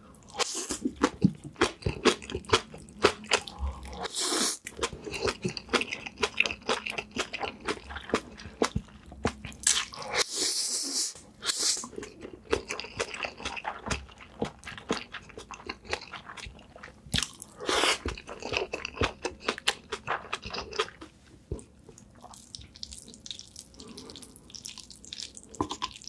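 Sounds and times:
wet chewing with mouth clicks: 0.3 - 10.0, 11.5 - 26.0.

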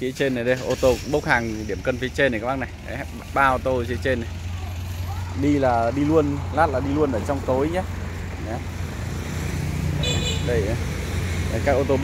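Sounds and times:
traffic hum: 0.0 - 12.0.

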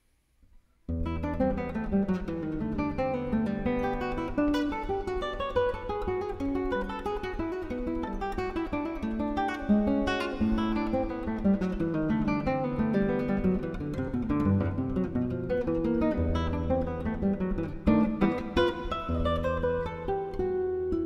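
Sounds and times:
fingerstyle classical guitar: 0.8 - 21.0.

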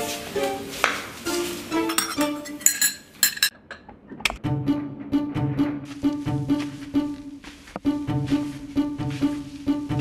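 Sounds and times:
faint background music: 0.0 - 3.5, 4.3 - 10.0
glass and cutlery clinking: 1.8 - 3.8.

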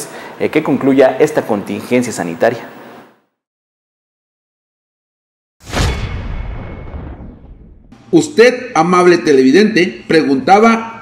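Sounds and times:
deep cinematic boom: 5.6 - 8.0.

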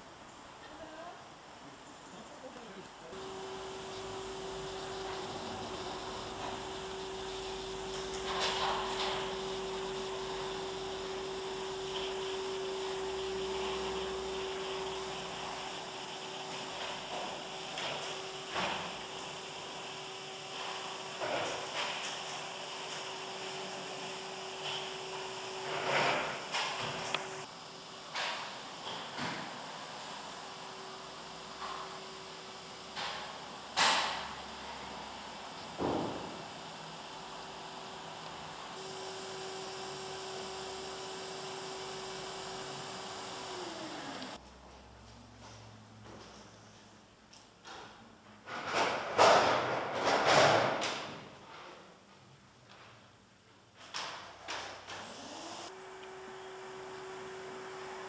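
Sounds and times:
steady single-pitched hum: 3.0 - 44.4.

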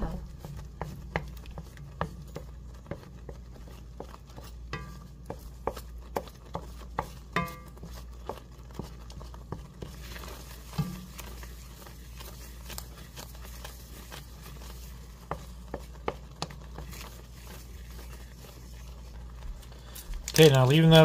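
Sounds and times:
sauce boiling: 0.0 - 21.0
spoon knocking and scraping pan: 0.0 - 21.0.

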